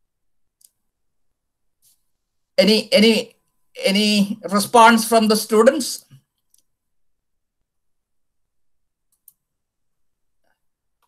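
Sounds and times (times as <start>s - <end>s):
computer mouse clicks: 6.4s - 6.7s, 9.1s - 9.5s.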